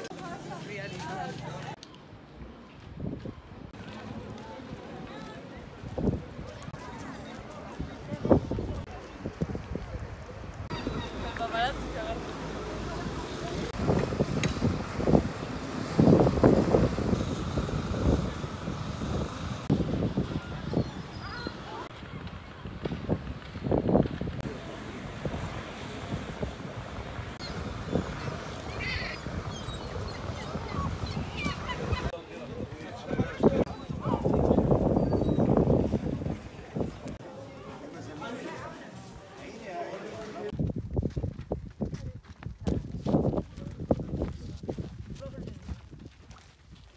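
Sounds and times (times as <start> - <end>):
people's voices: 0.0 - 23.6, 24.4 - 40.7
wind rushing over microphone: 2.8 - 3.8, 4.6 - 37.2, 40.5 - 46.9
seagull calls: 10.7 - 11.4, 28.2 - 32.2
camel footfalls on stony track: 40.6 - 46.9.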